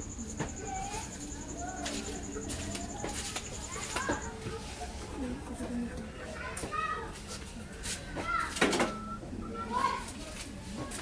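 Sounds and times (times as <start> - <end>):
high-pitched pulsing chirp: 0.0 - 4.4.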